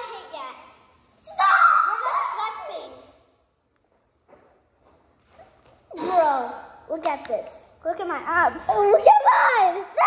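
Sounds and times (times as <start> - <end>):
faint knocks and rustles: 3.6 - 5.9.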